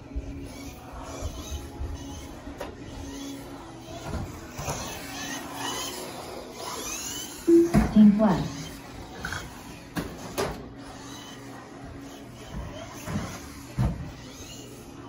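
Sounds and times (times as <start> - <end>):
electric motor whine: 0.0 - 10.0.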